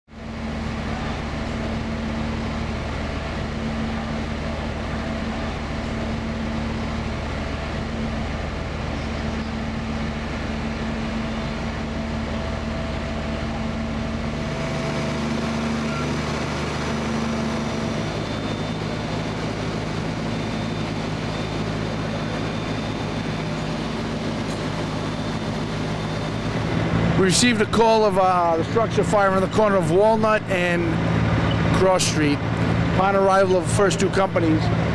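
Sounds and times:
fire engines running: 0:00.1 - 0:34.9.

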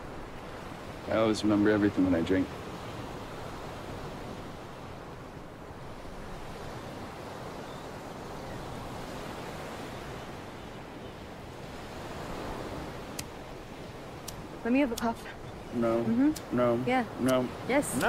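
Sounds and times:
ocean surf washing onto beach: 0:00.0 - 0:18.0
wind: 0:00.0 - 0:18.0.

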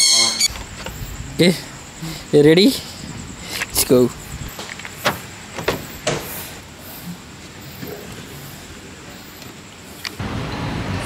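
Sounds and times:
thin high whine: 0:00.0 - 0:10.9
faint steady hiss: 0:00.0 - 0:11.0.

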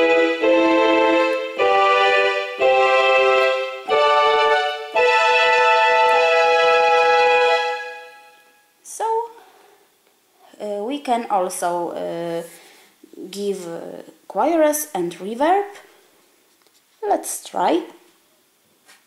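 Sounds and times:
keyboard playing sustained chords: 0:00.0 - 0:08.6.

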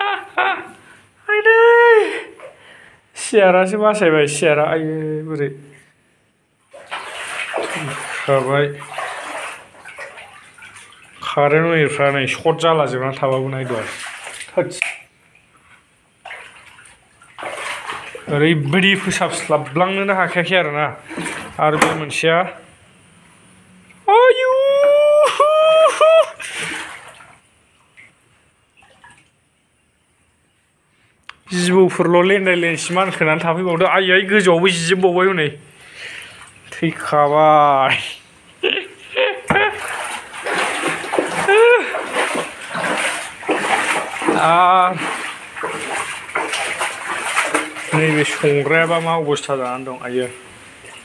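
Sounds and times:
high-pitched cry: 0:00.0 - 0:02.3
shallow water sloshing: 0:06.7 - 0:12.4, 0:13.2 - 0:22.1, 0:26.4 - 0:29.3, 0:39.2 - 0:51.0.

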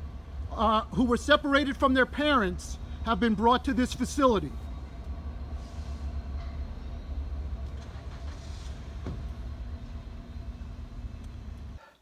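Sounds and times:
low outdoor rumble: 0:00.0 - 0:11.8
faint hum: 0:00.0 - 0:12.0.

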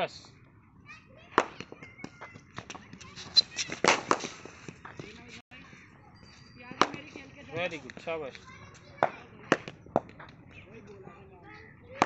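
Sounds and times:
cricket bat striking ball: 0:01.3 - 0:02.9, 0:03.7 - 0:05.1, 0:06.8 - 0:07.1, 0:09.0 - 0:10.4.

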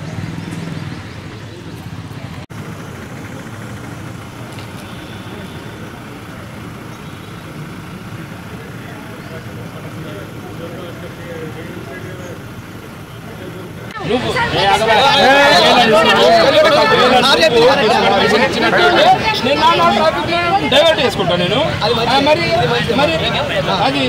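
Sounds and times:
distant traffic rumble: 0:00.0 - 0:24.0.

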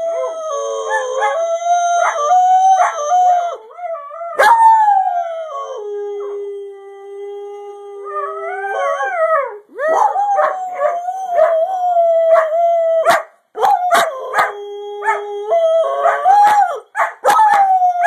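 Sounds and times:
dog howling: 0:00.0 - 0:18.0
dog barking: 0:13.0 - 0:13.3, 0:13.9 - 0:15.2, 0:17.0 - 0:17.6.

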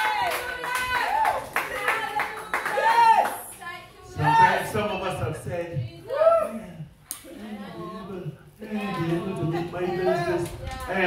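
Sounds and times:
people clapping: 0:00.0 - 0:03.7.

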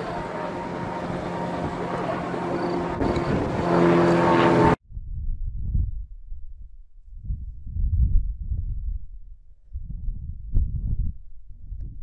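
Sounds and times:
helicopter engine and rotor: 0:00.0 - 0:04.8
wind buffeting microphone: 0:00.0 - 0:12.0.

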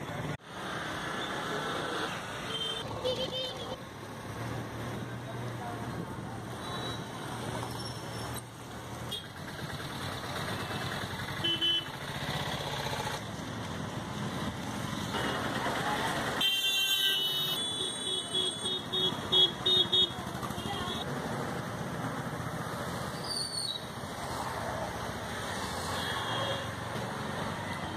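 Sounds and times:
vehicles passing: 0:00.0 - 0:27.9
car horns: 0:10.6 - 0:12.0, 0:16.4 - 0:21.0.

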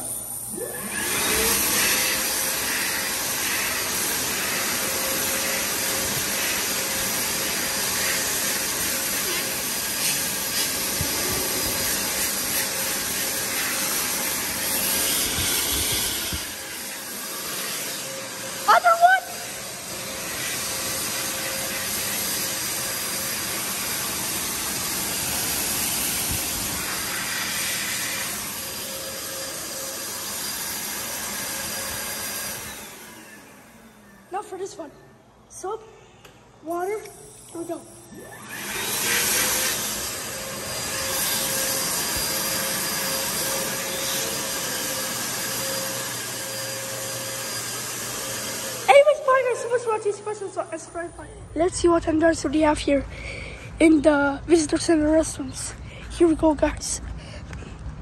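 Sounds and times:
hand dryer blowing air: 0:00.0 - 0:34.5, 0:37.5 - 0:51.2.

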